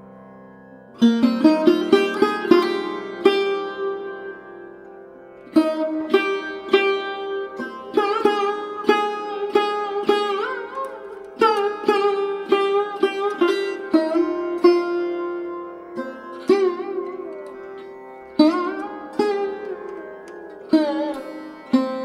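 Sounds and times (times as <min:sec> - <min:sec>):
plucked string instrument melody: 0:00.0 - 0:22.0.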